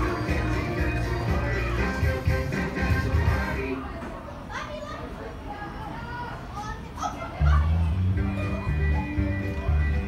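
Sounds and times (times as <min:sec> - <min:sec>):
loud music with heavy bass beat: 0:00.0 - 0:03.6
children's voices and chatter: 0:00.0 - 0:10.0.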